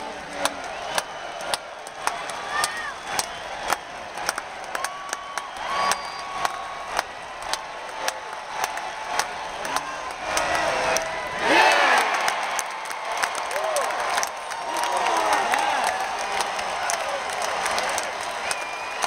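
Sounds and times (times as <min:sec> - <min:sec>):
crowd cheering and clapping: 0:00.0 - 0:19.0
sharp claps and shouts: 0:00.2 - 0:19.0.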